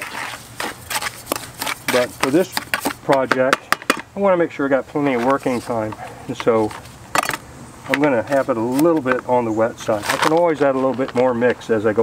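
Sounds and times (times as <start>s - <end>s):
trowel scraping wet mortar: 0.0s - 3.4s
trowel knocking on bucket: 0.0s - 4.0s.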